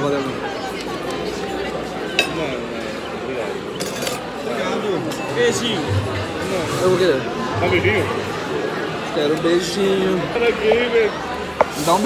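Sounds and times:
voices chattering: 0.0 - 12.0
tableware clink: 3.8 - 4.2.

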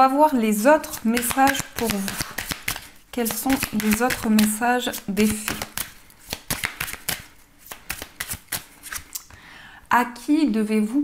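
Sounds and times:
cards being shuffled: 0.8 - 9.3.

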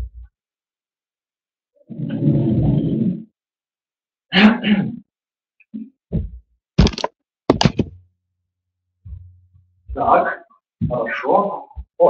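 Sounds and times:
sharp knocks: 6.2 - 8.0.

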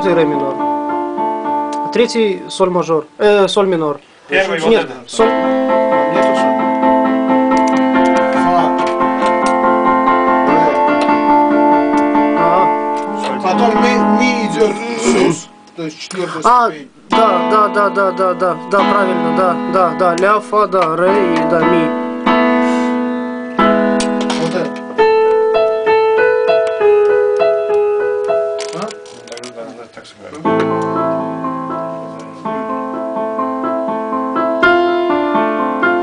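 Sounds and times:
electronic keyboard chords: 0.0 - 3.2, 4.5 - 36.0.

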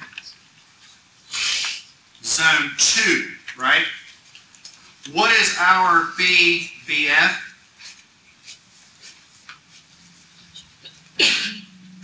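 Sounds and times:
person sneezing: 11.2 - 11.7.

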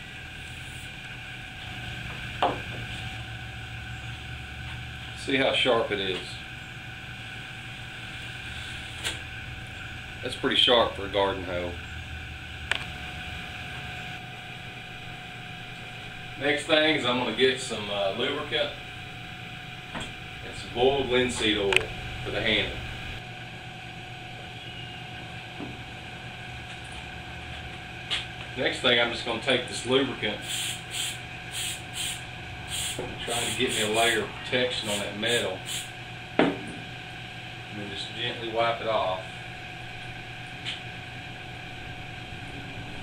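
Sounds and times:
low shop hum: 0.0 - 43.0.

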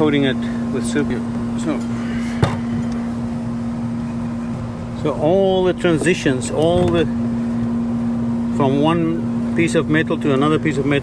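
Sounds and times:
air conditioning unit humming: 0.0 - 11.0.

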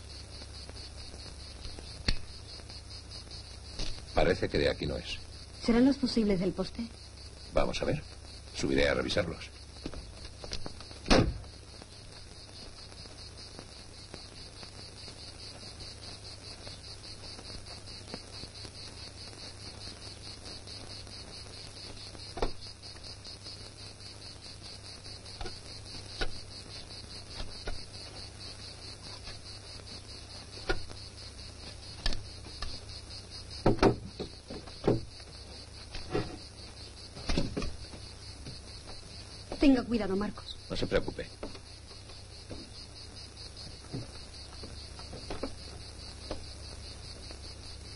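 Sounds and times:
insects chirring: 0.0 - 47.9
wooden ladder knocking: 33.6 - 35.1.

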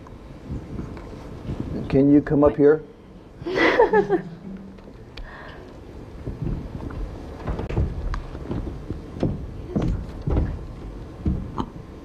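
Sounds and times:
footsteps on stage floor: 4.8 - 12.0.

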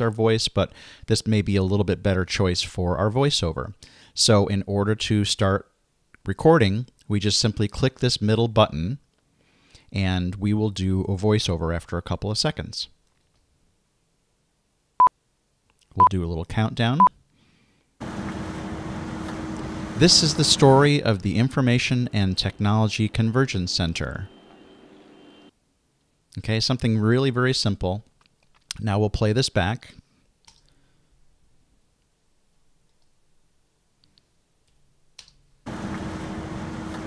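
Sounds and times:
constant low hum: 18.0 - 25.5, 35.7 - 37.0
machinery noise: 18.0 - 25.5, 35.7 - 37.0.

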